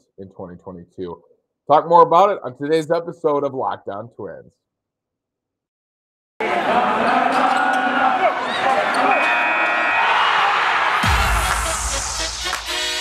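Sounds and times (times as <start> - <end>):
voices: 6.4 - 9.8
intro music: 11.0 - 13.0.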